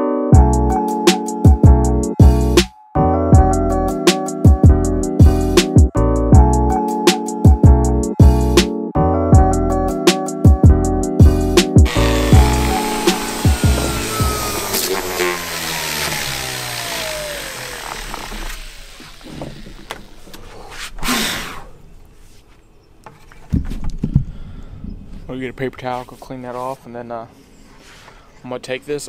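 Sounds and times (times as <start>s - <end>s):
background music with a beat: 0.4s - 14.4s
falling whine: 11.9s - 20.3s
palm sander hissing: 11.9s - 21.8s.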